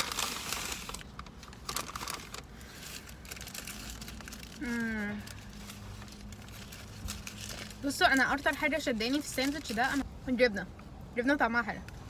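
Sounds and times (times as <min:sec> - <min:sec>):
paper wrapper crinkling: 0:00.0 - 0:10.0.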